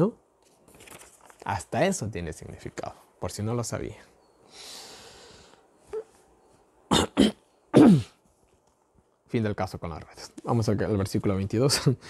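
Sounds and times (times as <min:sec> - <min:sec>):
man breathing in: 0:04.4 - 0:05.7
man coughing: 0:06.9 - 0:08.2.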